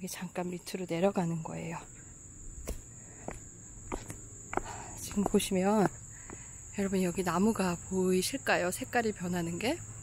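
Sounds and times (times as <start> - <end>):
crickets and night insects chirping: 0.0 - 10.0
footsteps walking downhill: 1.8 - 7.0.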